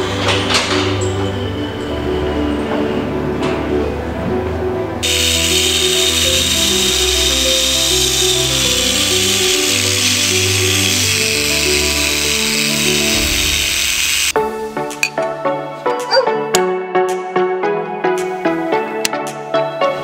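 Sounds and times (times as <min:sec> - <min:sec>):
background music: 0:00.0 - 0:20.0
angle grinder grinding metal: 0:05.0 - 0:14.4.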